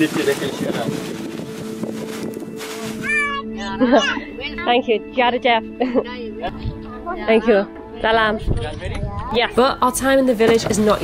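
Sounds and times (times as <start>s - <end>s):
background music: 0.0s - 11.0s
high wavering animal call: 3.0s - 3.6s.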